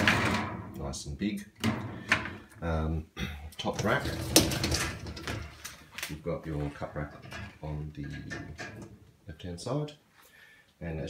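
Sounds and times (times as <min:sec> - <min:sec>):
dishwasher basket rattling out: 0:00.0 - 0:00.7, 0:03.7 - 0:05.8, 0:06.6 - 0:09.0.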